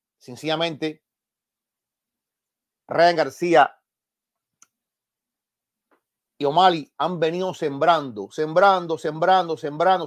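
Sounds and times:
man speaking: 0.2 - 1.1, 2.9 - 3.9, 6.4 - 10.0.

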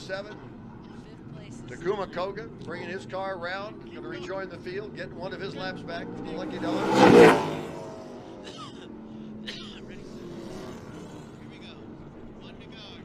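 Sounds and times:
drone of circling car engines: 0.0 - 13.0
race cars passing by: 0.0 - 13.0.

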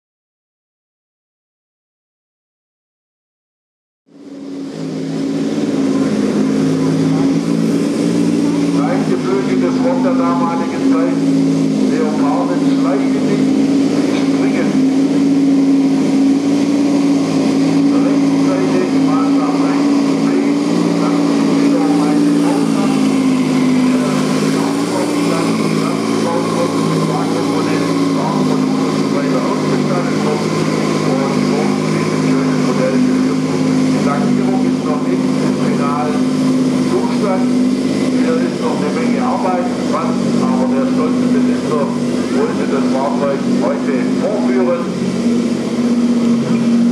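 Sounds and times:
model tank engine drone: 4.1 - 46.9
background voices: 17.6 - 45.0.

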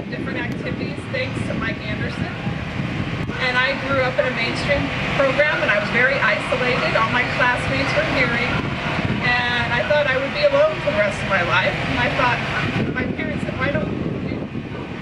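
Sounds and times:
low background rumble: 0.0 - 15.0.

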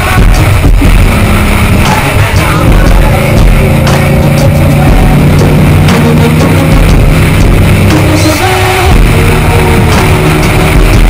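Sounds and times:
car driving at speed: 0.0 - 11.0
loud rock music: 0.0 - 11.0.

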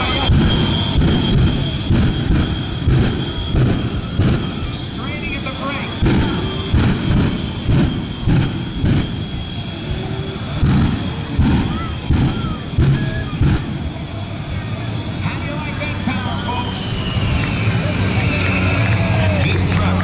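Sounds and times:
jet engines roaring with afterburner: 0.0 - 20.0.

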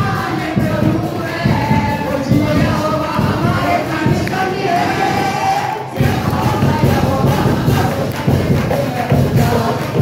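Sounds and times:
music with steady beat: 0.0 - 5.0, 5.7 - 10.0
congregation singing: 0.0 - 10.0.

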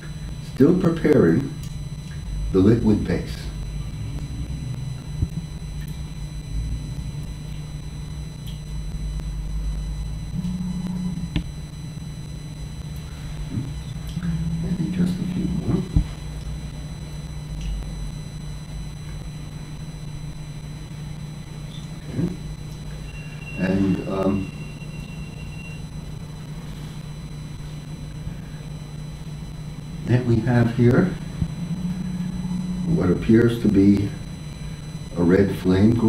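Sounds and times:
steady low hum: 0.0 - 36.0.

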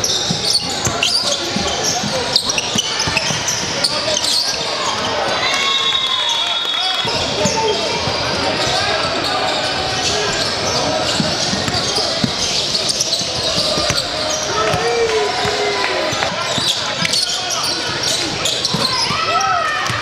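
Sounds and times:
echoing voices in hall: 0.0 - 20.0.

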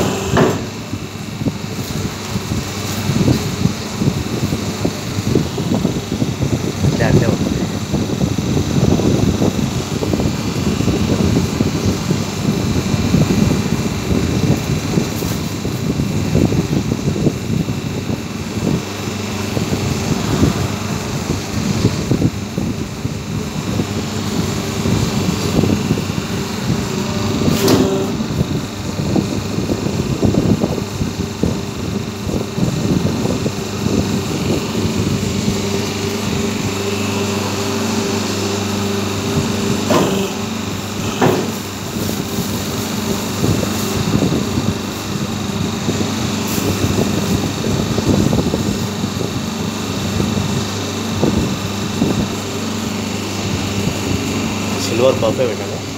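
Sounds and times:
hydraulic pump motor humming: 0.0 - 55.9.

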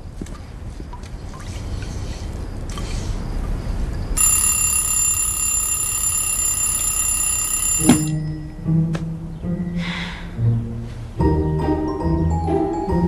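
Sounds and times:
high electronic ringing tone: 4.2 - 8.5.

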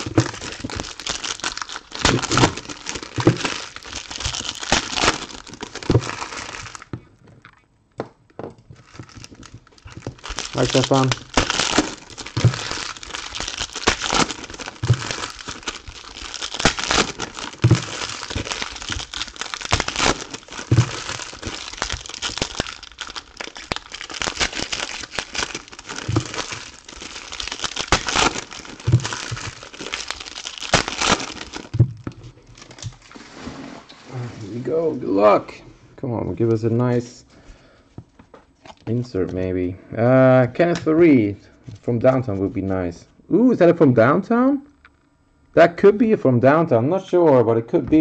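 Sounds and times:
foil wrappers crinkling: 0.0 - 7.5, 8.6 - 33.5.

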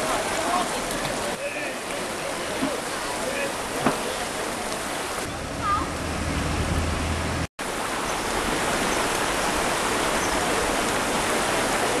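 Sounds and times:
floodwater rushing and sloshing: 0.0 - 12.0.

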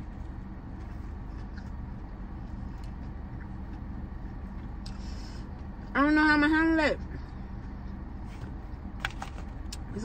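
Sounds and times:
car engine idling hum: 0.0 - 10.0.

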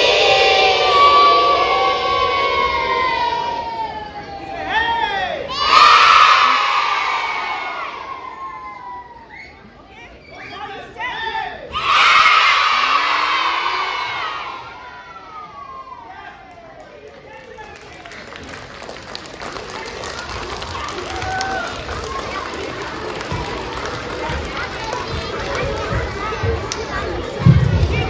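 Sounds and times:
children cheering and shouting: 0.0 - 4.7, 5.5 - 9.3, 11.7 - 16.0, 20.6 - 28.0
children cheering: 19.7 - 26.4.

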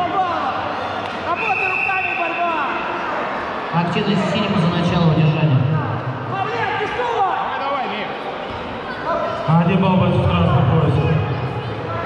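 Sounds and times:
voices calling out echoing: 0.0 - 12.0.

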